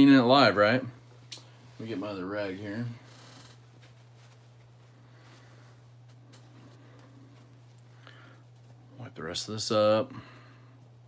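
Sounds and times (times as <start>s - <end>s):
steady low hum: 0.0s - 11.0s
cloth rag rustling: 1.0s - 9.0s.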